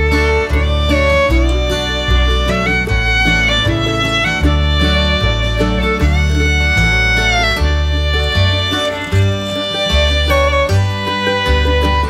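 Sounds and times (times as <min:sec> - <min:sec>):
fiddle melody with sliding notes: 0:00.0 - 0:12.0
guitar: 0:00.0 - 0:12.0
stepping bass line: 0:00.0 - 0:12.0.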